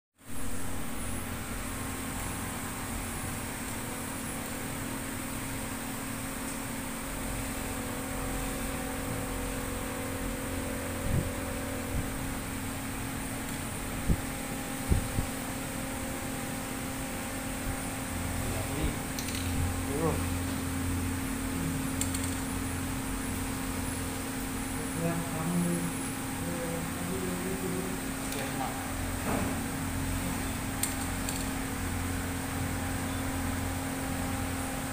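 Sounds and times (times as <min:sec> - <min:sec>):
electrical hum: 0:00.2 - 0:34.9
fan-like hiss: 0:00.2 - 0:34.9
faint high whine: 0:06.4 - 0:34.7.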